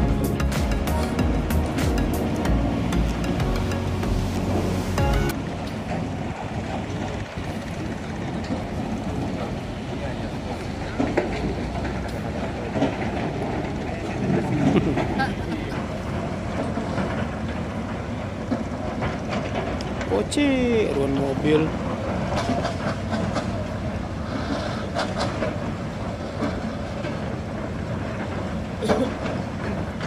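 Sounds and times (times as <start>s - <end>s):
distant heavy machinery: 0.9s - 30.0s.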